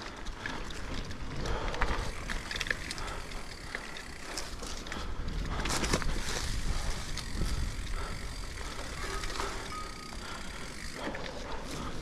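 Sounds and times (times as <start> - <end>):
bike clicks and rattles: 0.0 - 12.0
bike tyres rumbling on dirt: 0.0 - 12.0.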